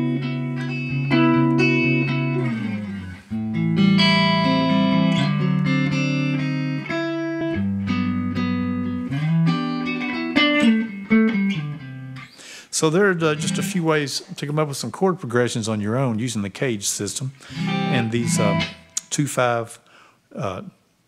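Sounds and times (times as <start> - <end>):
electric guitar strumming chords: 0.0 - 12.4, 13.0 - 14.0, 17.4 - 19.1
man's voice: 12.7 - 20.8.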